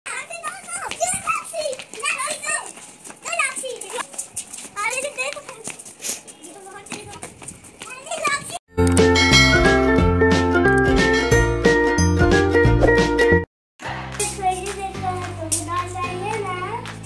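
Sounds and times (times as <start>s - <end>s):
children shouting and squealing: 0.1s - 8.6s.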